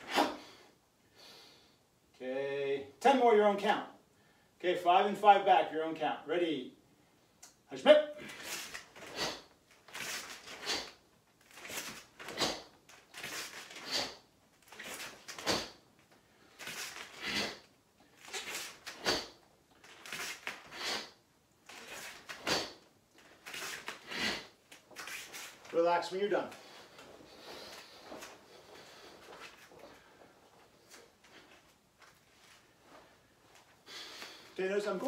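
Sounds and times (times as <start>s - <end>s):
sharp breaths: 8.2s - 25.6s, 26.5s - 31.6s, 33.1s - 34.6s
bare feet on mat: 8.2s - 35.0s.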